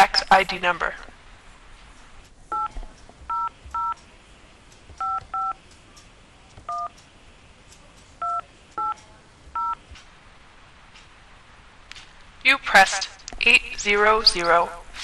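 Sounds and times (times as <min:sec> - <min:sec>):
telephone keypad tones: 0:03.3 - 0:04.0, 0:05.0 - 0:05.6, 0:06.7 - 0:07.0, 0:08.2 - 0:09.0, 0:09.6 - 0:09.8.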